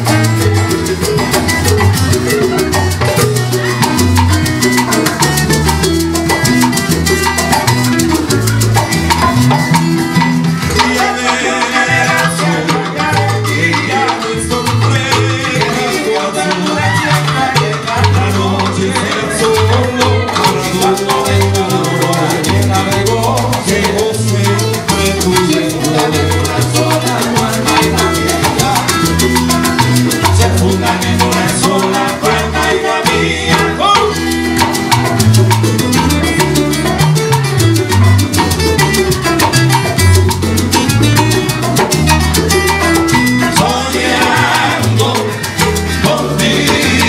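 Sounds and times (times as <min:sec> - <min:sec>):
acoustic guitar: 0:00.0 - 0:47.0
bass line: 0:00.0 - 0:47.0
congas: 0:00.0 - 0:47.0
maracas: 0:00.0 - 0:47.0
men singing: 0:10.6 - 0:37.2, 0:38.7 - 0:47.0.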